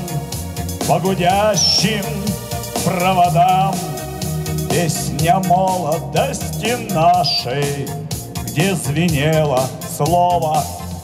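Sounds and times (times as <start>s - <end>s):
amplified backing music: 0.0s - 11.0s.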